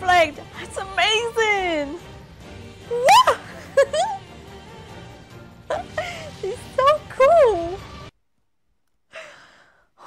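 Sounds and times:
woman sighing: 9.1s - 10.0s.

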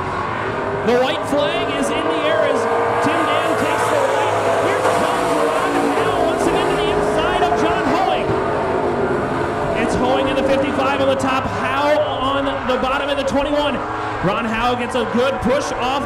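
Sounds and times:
race car engines racing: 0.0s - 16.0s.

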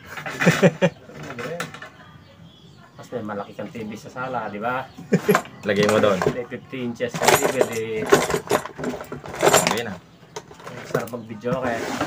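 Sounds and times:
metal hand tools clinking: 7.1s - 11.3s.

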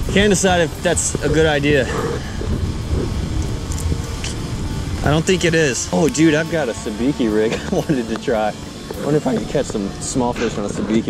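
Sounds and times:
wind buffeting microphone: 0.0s - 7.9s
faint background music: 0.0s - 11.0s.

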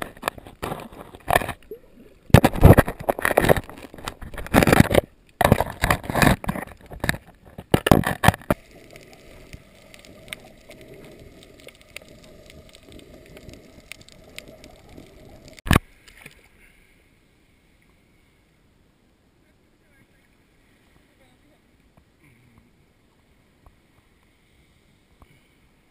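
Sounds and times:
low steady hiss: 0.0s - 5.4s, 8.3s - 25.9s.

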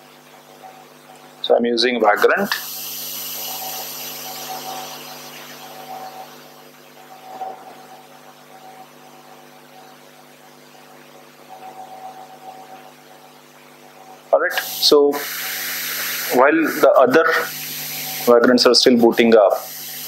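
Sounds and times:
electrical hum with high tone: 0.0s - 20.0s
hiss: 2.5s - 6.4s, 14.5s - 18.3s, 19.6s - 20.0s.

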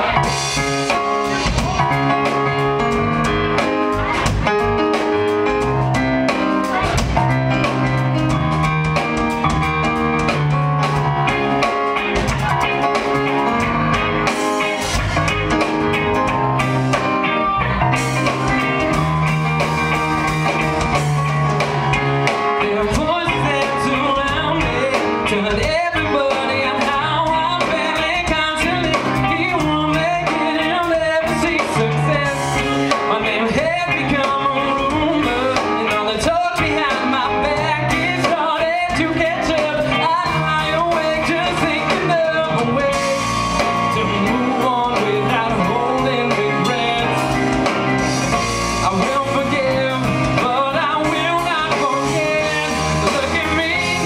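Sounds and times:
rock band playing: 0.0s - 54.0s
man singing: 19.9s - 54.0s.

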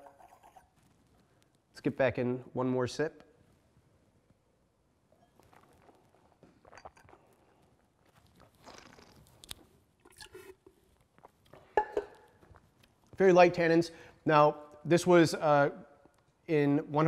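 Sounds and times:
man sipping and tasting wine: 5.1s - 13.0s
soft mouth noises: 5.2s - 13.2s.

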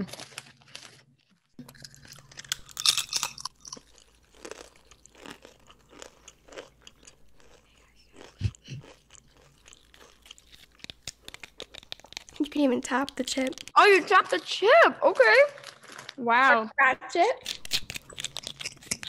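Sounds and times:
chewing crunches: 0.1s - 13.8s, 17.4s - 19.0s
crunchy chip bite: 1.6s - 12.4s, 17.4s - 19.0s.

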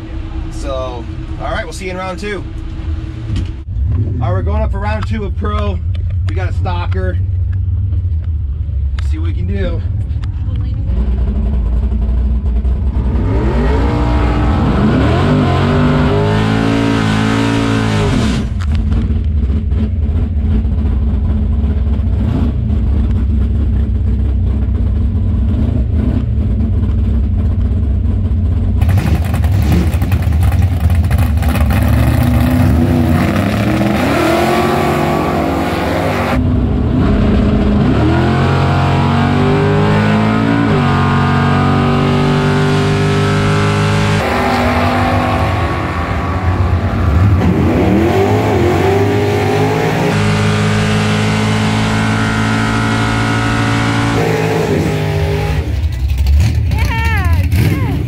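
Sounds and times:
race car engine revving: 10.6s - 26.8s, 28.7s - 58.0s.

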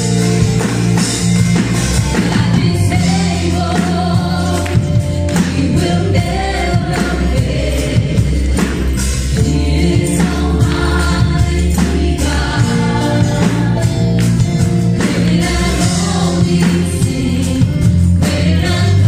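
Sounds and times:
band playing: 0.0s - 19.0s
group singing in unison: 1.9s - 19.0s.

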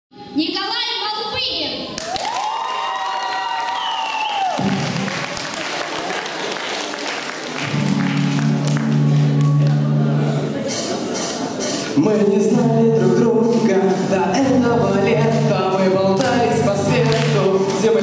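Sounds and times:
audience applauding and cheering: 1.9s - 10.4s
pop backing track: 7.7s - 18.0s.

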